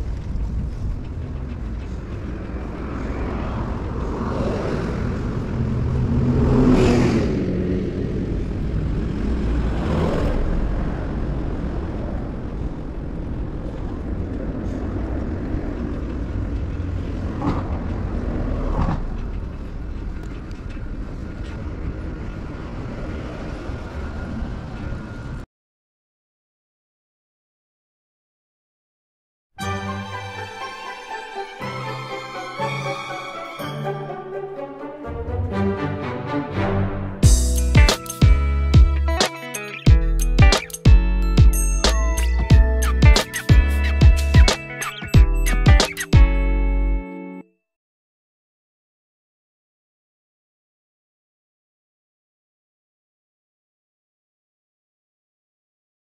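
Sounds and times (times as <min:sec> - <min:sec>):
traffic rumble: 0:00.0 - 0:25.4, 0:36.8 - 0:39.2, 0:39.9 - 0:47.0
vehicles passing: 0:00.0 - 0:25.4, 0:32.1 - 0:47.0.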